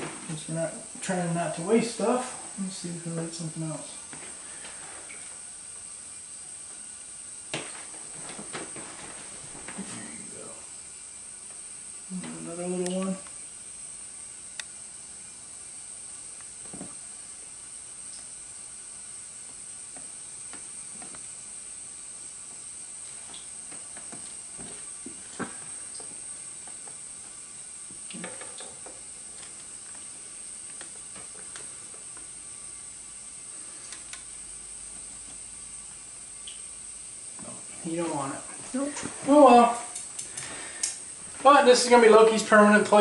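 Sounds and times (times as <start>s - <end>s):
steady high hiss: 0.0s - 43.0s.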